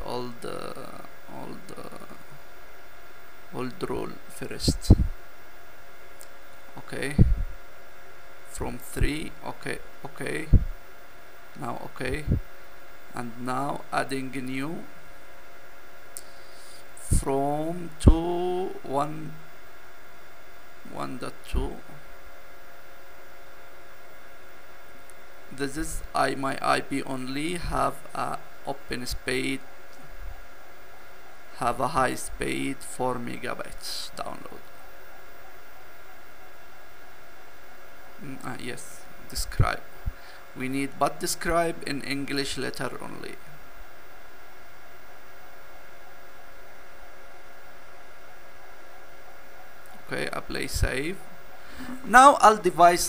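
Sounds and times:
faint hum: 0.0s - 53.0s
steady hiss: 0.0s - 53.0s.

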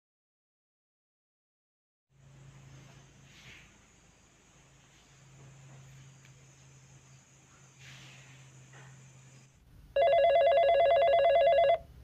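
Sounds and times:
electronic telephone ringing: 10.0s - 11.9s.

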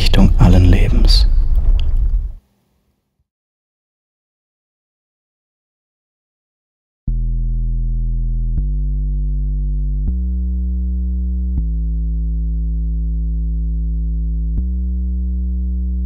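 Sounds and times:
sustained synthesizer bass note: 7.1s - 16.0s.

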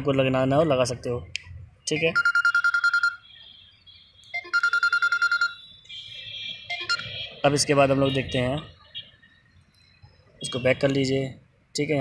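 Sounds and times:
phone ringing with trilling beeps: 1.9s - 7.5s.

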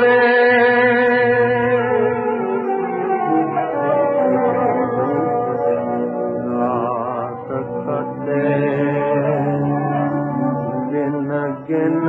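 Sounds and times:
old film song with vibrato melody: 0.0s - 12.0s.

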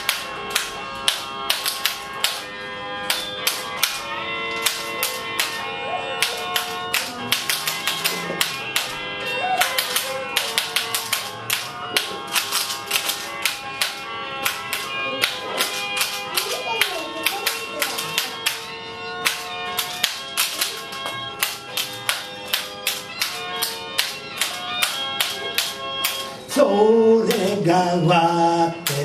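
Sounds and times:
abacus beads clicking: 0.0s - 5.6s, 6.2s - 26.4s, 27.2s - 27.8s
sustained musical notes: 0.0s - 29.0s.

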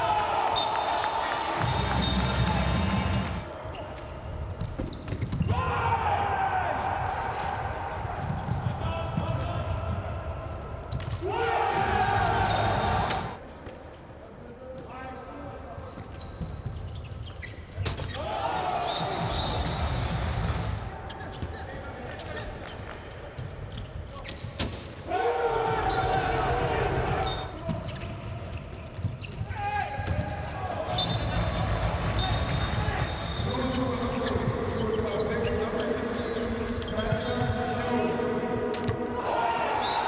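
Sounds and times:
ball bouncing on indoor court: 1.6s - 11.8s, 14.7s - 20.5s, 25.6s - 35.6s, 38.7s - 39.2s.

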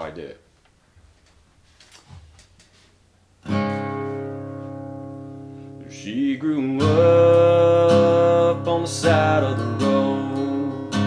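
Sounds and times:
acoustic guitar chord strummed: 3.4s - 11.0s.

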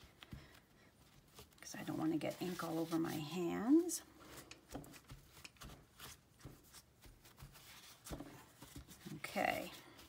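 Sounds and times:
paper towel rustling: 0.0s - 10.0s
paper towel dabbing on card: 1.3s - 3.9s.

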